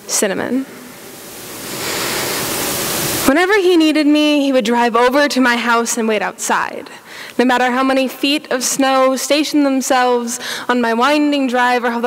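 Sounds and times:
deep inhale near microphone: 1.6 - 2.8, 7.0 - 7.4, 10.4 - 10.7.

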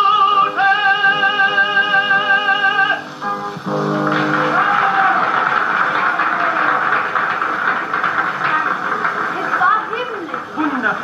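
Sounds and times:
crowd applauding: 3.7 - 11.0.

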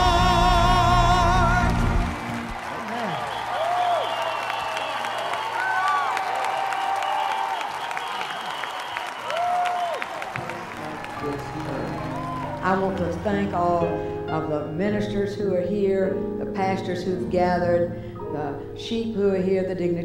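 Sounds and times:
crowd applauding and cheering: 0.0 - 13.8
people shouting: 10.4 - 12.7.

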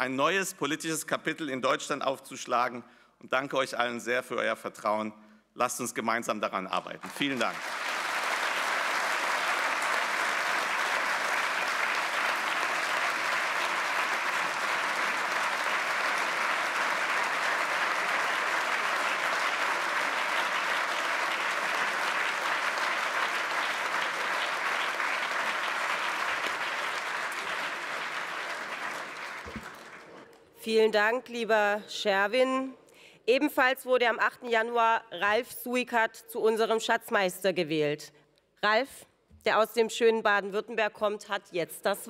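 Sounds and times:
audience applauding: 7.0 - 30.4.

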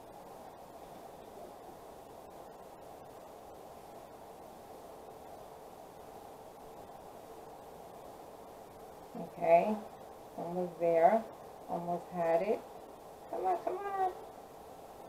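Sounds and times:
faint room hiss: 0.0 - 15.0.

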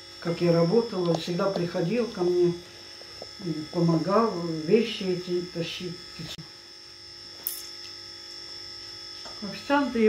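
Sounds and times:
electrical hum with whine: 0.0 - 10.0.

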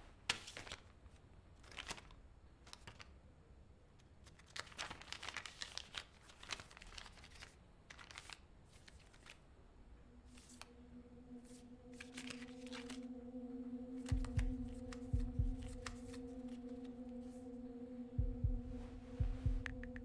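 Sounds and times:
paper rustling and crinkling: 0.2 - 3.2, 4.2 - 9.5, 10.3 - 10.7, 11.4 - 13.1
low steady hum: 9.6 - 20.0.

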